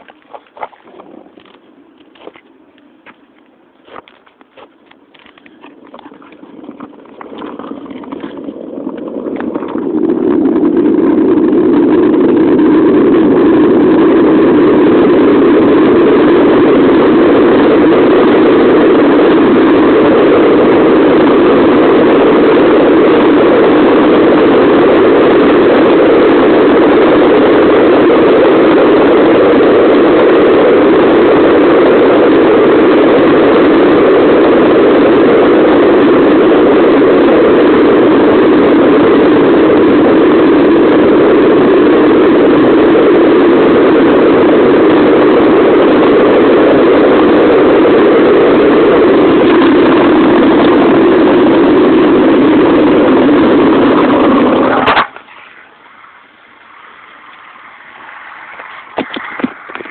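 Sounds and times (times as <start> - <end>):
skateboard wheels rolling on asphalt: 0.0 - 59.9.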